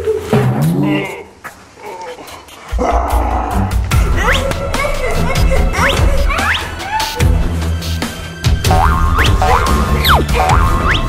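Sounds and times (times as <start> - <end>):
background music: 2.8 - 11.0.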